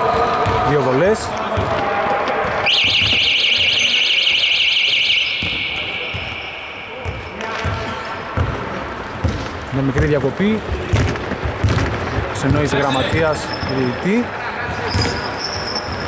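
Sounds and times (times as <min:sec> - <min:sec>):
basketball bouncing on court: 0:00.3 - 0:04.0, 0:05.2 - 0:13.9, 0:14.6 - 0:16.0
electronic alarm warbling tone: 0:02.6 - 0:07.4.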